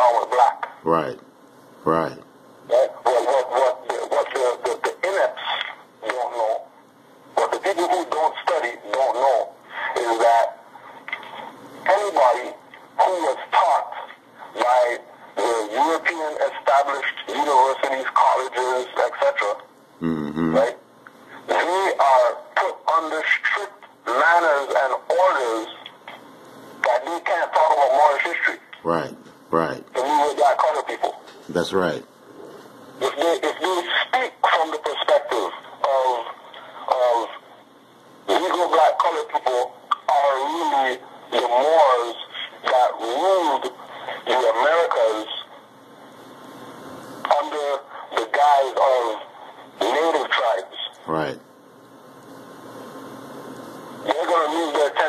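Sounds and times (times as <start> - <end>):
person talking: 0.0 - 1.2, 7.4 - 20.8, 26.8 - 32.1.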